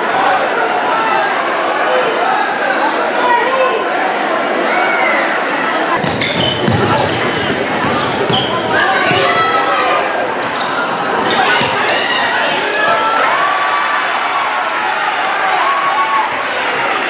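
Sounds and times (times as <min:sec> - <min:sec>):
crowd talking and shouting: 0:00.0 - 0:17.0
basketball bouncing on hardwood: 0:06.0 - 0:09.3, 0:11.6 - 0:11.8.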